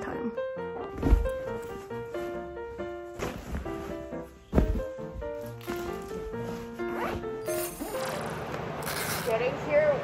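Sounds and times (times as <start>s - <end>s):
light melodic background music: 0.0s - 10.0s
zipper pulled: 6.8s - 9.4s.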